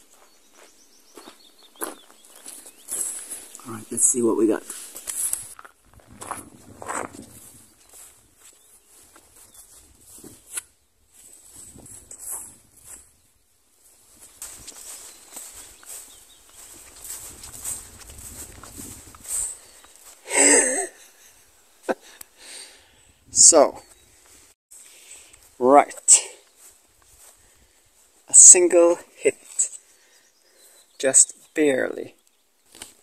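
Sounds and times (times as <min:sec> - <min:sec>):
footsteps on gravel and grass: 0:00.0 - 0:21.2, 0:23.8 - 0:29.9, 0:32.6 - 0:33.0.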